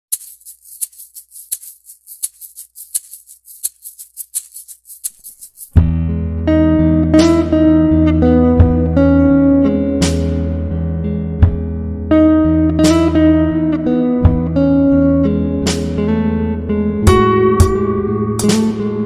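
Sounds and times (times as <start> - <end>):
fast ticking percussion: 0.1 - 5.8
music with guitar and bass: 5.8 - 19.0.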